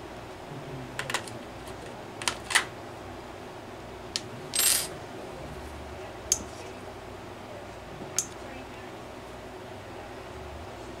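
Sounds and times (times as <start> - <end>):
metal tools being handled: 4.6 - 4.9.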